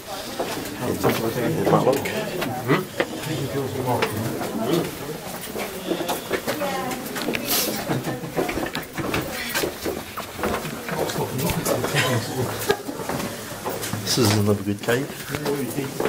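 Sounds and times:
indistinct talking: 0:00.0 - 0:16.0.

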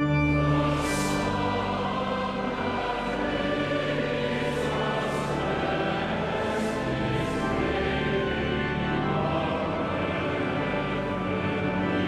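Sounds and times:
pipe organ: 0:00.0 - 0:12.0
choir and congregation singing hymn: 0:00.1 - 0:12.0.

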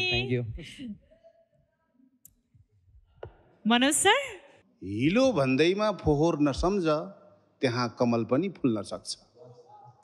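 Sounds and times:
person speaking: 0:00.0 - 0:01.0.

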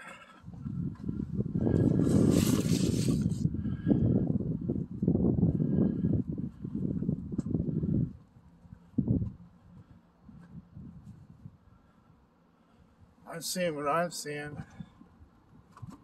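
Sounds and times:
uneven rumbling on microphone: 0:00.0 - 0:08.2
brief hiss: 0:02.1 - 0:03.4.

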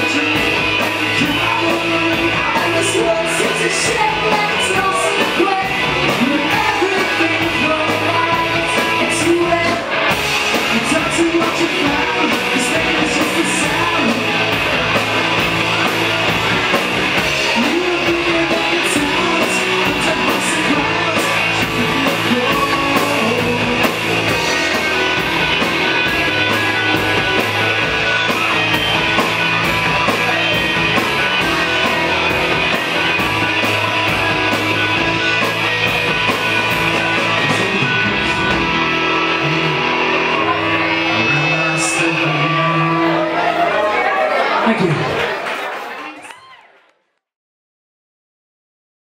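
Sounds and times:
drums and cymbals: 0:00.0 - 0:41.1
person singing: 0:00.0 - 0:43.9
bass guitar: 0:00.0 - 0:45.3
electric guitars: 0:00.0 - 0:45.3.

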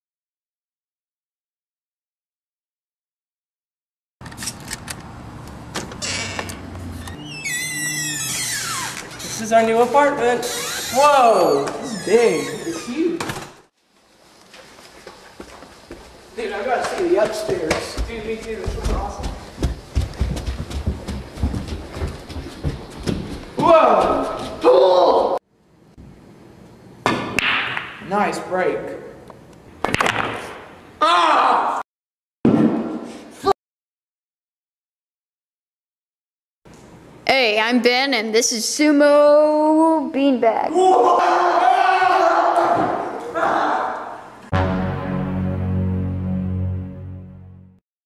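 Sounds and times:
door squealing: 0:06.0 - 0:13.6.

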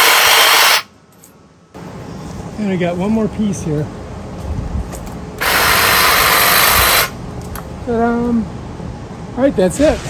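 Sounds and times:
hedge trimmer running: 0:05.4 - 0:07.2.

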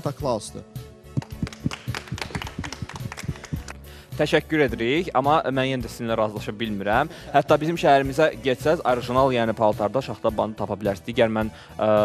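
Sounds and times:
quiet background music: 0:00.0 - 0:12.0
people clapping: 0:01.1 - 0:03.9.

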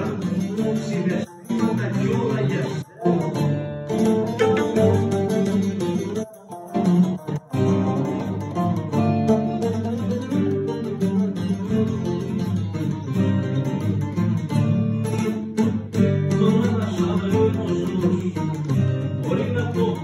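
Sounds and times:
folk music with plucked strings: 0:00.0 - 0:20.0.

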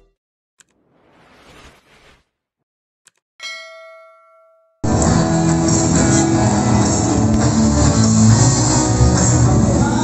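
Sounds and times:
bright bell ding: 0:03.4 - 0:04.8
loud guitar music: 0:04.8 - 0:10.0.

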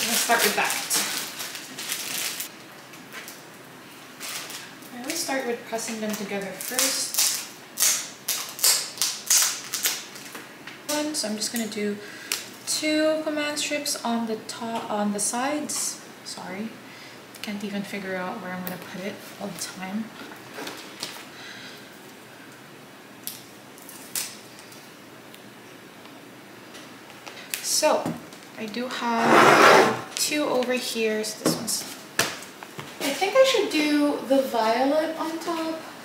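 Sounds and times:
scratchy crackles of adhesive strips: 0:06.5 - 0:10.4.

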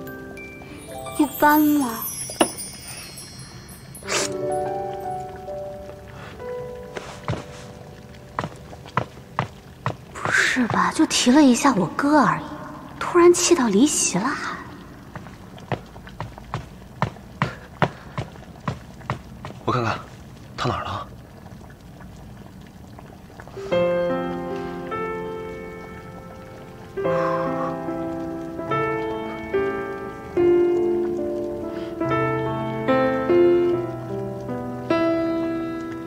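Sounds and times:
chiming tinkling music: 0:00.0 - 0:05.8
footsteps walking: 0:06.9 - 0:11.1, 0:15.1 - 0:19.6.

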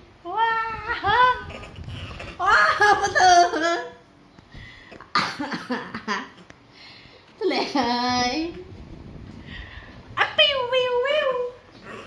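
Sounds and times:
person coughing: 0:05.1 - 0:06.1.

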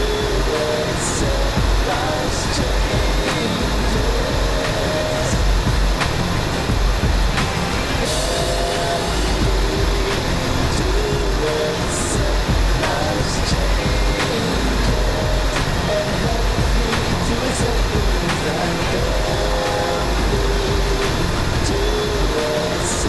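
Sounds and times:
faint music: 0:00.0 - 0:23.0.

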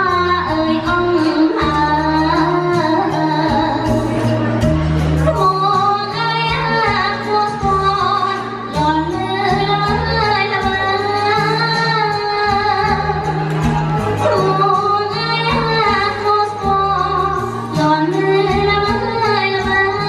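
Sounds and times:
bass line: 0:00.0 - 0:20.0
woman singing into a microphone: 0:00.0 - 0:20.0.

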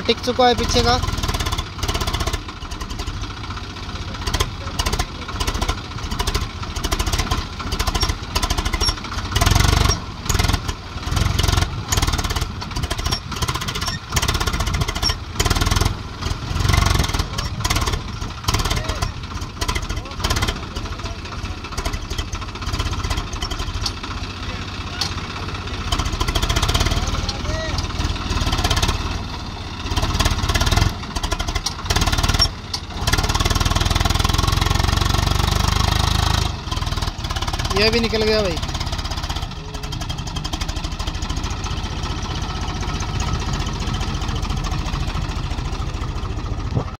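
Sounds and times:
tractor diesel engine under load: 0:00.0 - 0:46.9.

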